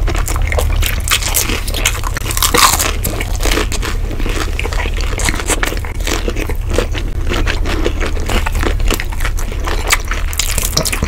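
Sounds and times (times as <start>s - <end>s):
crunching and chewing: 0.0s - 11.0s.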